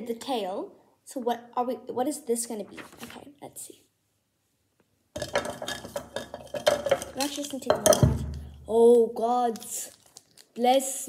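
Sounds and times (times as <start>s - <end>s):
markers rattling in a cup: 5.2s - 8.0s, 9.5s - 10.6s.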